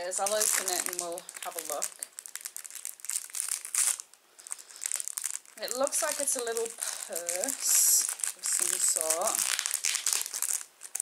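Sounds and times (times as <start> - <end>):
plastic packet crinkling: 0.0 - 11.0.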